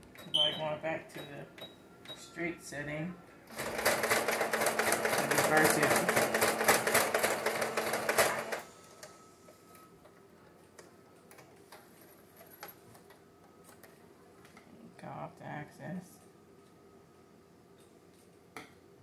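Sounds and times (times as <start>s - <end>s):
electric sewing machine stitching: 3.5s - 8.6s.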